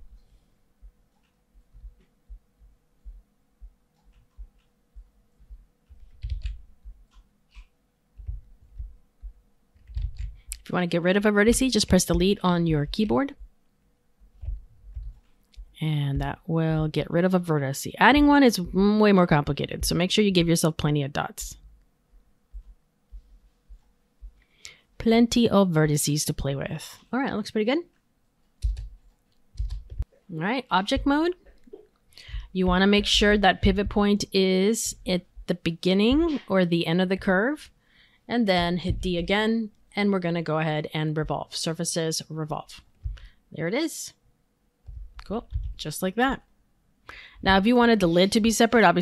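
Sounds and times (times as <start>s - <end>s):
computer mouse clicks: 3.9s - 4.8s, 5.9s - 8.9s
keyboard taps: 5.4s - 9.0s
dull low thump: 8.2s - 10.3s, 14.4s - 16.4s, 30.9s - 31.3s, 32.3s - 34.1s, 38.5s - 39.4s, 43.0s - 43.3s, 44.9s - 45.9s.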